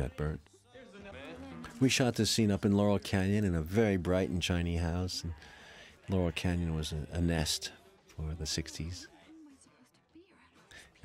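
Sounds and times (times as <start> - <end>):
faint speech: 0.0 - 11.0.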